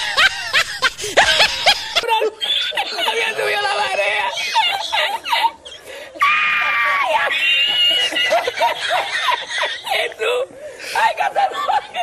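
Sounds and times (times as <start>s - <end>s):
rapid snickering laughter: 0.0s - 6.1s, 7.1s - 10.2s, 10.8s - 12.0s
high-pitched screams: 6.2s - 8.1s.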